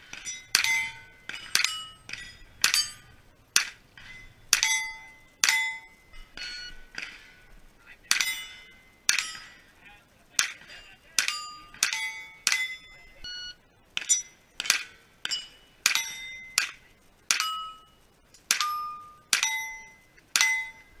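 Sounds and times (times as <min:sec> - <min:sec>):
steel target plate ringing: 0:00.0 - 0:21.0.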